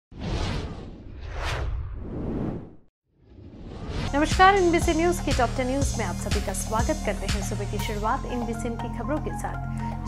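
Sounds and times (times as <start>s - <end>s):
whoosh sound effects: 0.1s - 4.2s.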